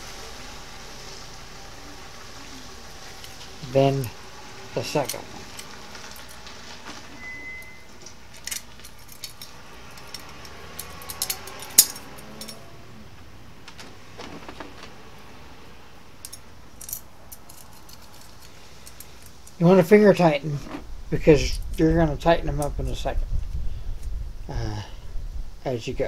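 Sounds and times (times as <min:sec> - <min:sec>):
sharp metal click: 0:08.3 - 0:12.6
small metal clicks and clinks: 0:08.3 - 0:12.6, 0:16.2 - 0:19.6.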